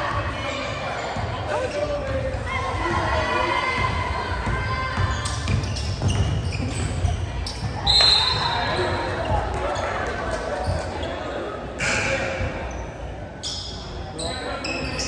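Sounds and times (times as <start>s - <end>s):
echoing crowd chatter: 0.0s - 15.0s
shoe squeal: 4.9s - 10.0s, 10.6s - 15.0s.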